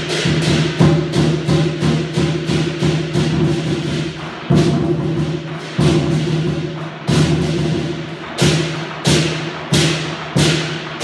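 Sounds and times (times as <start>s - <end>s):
big drum: 0.0s - 11.0s
cymbals clashing: 0.0s - 11.0s.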